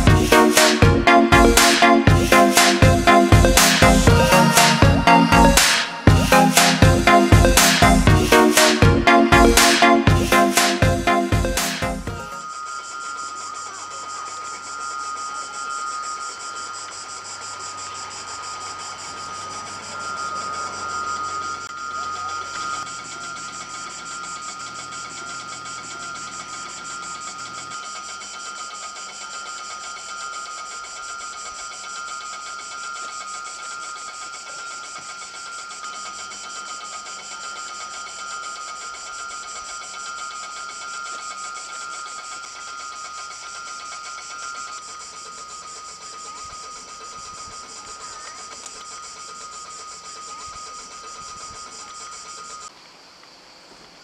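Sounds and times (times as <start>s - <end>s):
electric bell ringing: 0.0s - 52.7s.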